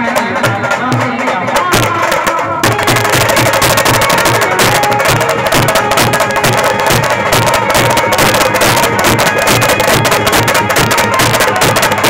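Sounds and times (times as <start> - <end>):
drums playing fast rhythm: 0.0 - 12.0
melody over drums: 0.0 - 12.0.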